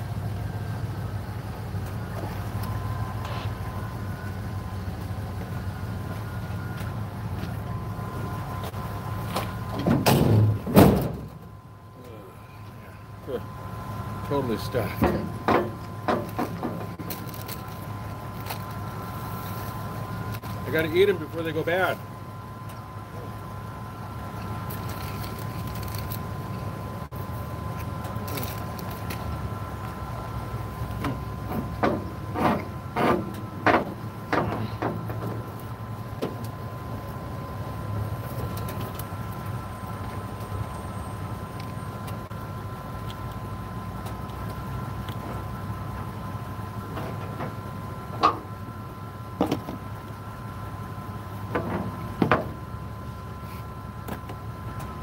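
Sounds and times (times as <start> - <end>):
mechanical hum with thin whine: 0.0 - 55.0.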